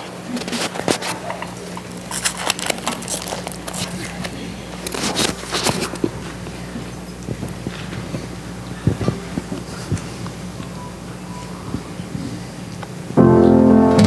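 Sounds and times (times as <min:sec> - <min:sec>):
congregation shuffling and murmuring: 0:00.0 - 0:14.0
steady low hum: 0:00.0 - 0:14.0
rustling: 0:00.3 - 0:06.5.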